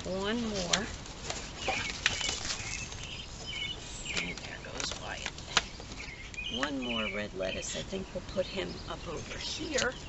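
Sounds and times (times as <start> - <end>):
plastic tray rustling: 0.0 - 6.2
faint bird chirps: 1.5 - 4.6, 5.6 - 7.9.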